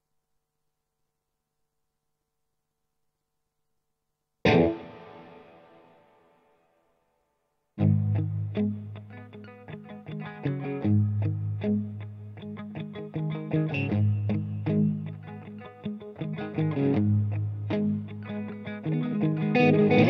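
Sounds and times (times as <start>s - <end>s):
electric guitar blues phrases: 4.5s - 6.0s, 7.8s - 20.0s.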